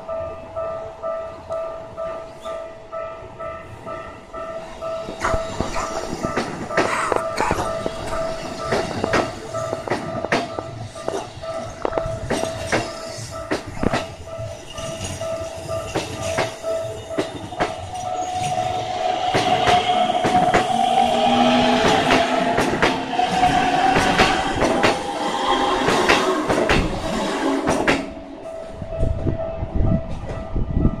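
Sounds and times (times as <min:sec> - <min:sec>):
level crossing warning bell: 0:00.0 - 0:25.9, 0:28.1 - 0:31.0
wavering train motor tone: 0:00.0 - 0:31.0
train wheels clacking over rail joints: 0:05.0 - 0:28.2.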